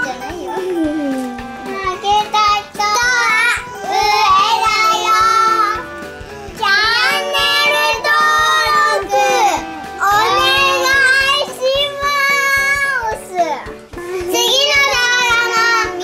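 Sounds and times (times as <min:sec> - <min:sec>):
girls singing together: 0:01.1 - 0:05.9, 0:06.6 - 0:12.8, 0:14.3 - 0:16.0.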